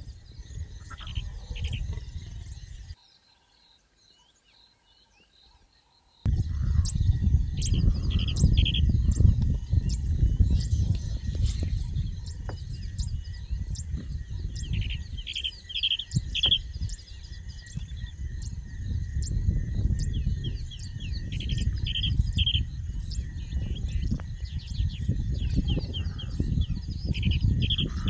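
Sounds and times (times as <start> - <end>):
birds chirping and calling: 0.0 - 28.0.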